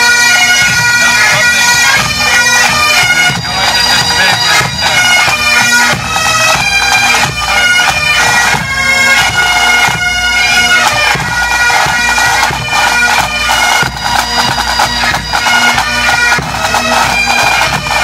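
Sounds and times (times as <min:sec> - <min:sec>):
bagpipes playing with drone: 0:00.0 - 0:18.0
snare and bass drums beating: 0:02.0 - 0:18.0.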